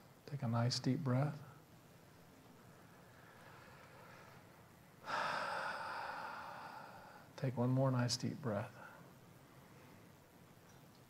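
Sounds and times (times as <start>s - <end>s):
man breathing deeply: 3.0s - 7.3s.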